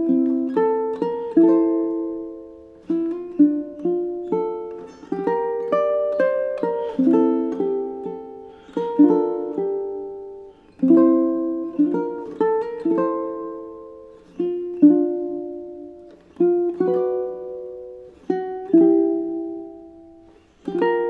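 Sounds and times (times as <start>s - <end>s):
ukulele fingerstyle: 0.0s - 21.0s.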